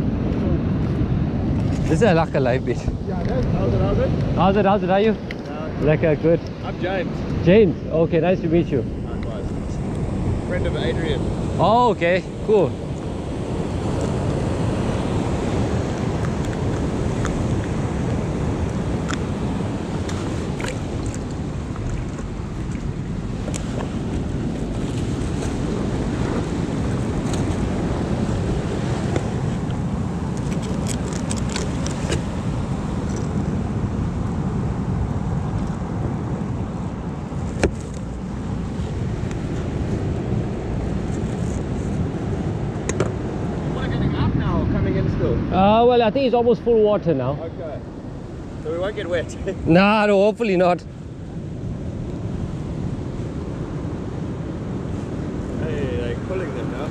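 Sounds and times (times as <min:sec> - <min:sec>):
wind buffeting microphone: 0:00.0 - 0:56.9
surf breaking on beach: 0:08.9 - 0:47.2, 0:47.8 - 0:56.9.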